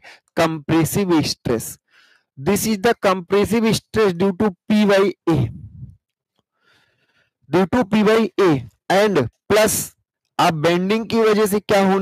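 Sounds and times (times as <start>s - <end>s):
man speaking: 0.0s - 1.8s, 2.4s - 5.9s, 7.5s - 12.0s.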